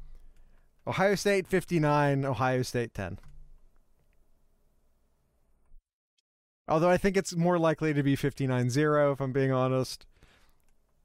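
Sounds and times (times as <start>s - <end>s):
man speaking: 0.9s - 3.2s, 6.7s - 10.1s
faint clicks: 10.4s - 11.0s.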